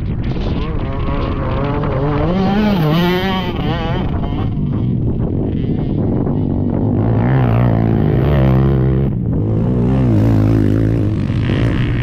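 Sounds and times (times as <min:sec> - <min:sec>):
atv engines revving: 0:00.0 - 0:12.0.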